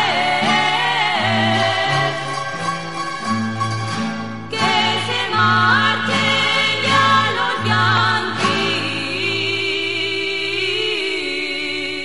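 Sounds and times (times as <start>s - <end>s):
women singing folk song: 0.0s - 2.7s, 4.5s - 12.0s
instrumental accompaniment: 0.0s - 9.4s.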